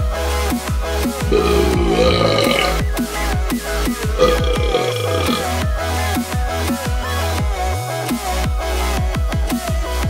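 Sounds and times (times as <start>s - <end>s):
man burping: 1.3s - 2.9s, 4.1s - 5.6s.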